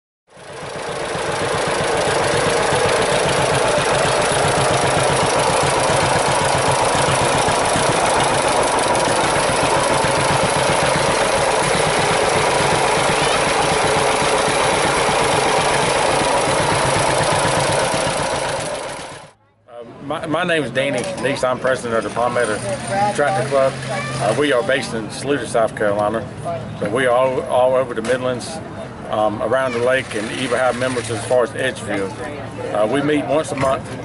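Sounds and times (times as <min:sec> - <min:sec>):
tractor engines idling: 0:00.4 - 0:19.4, 0:20.2 - 0:34.0.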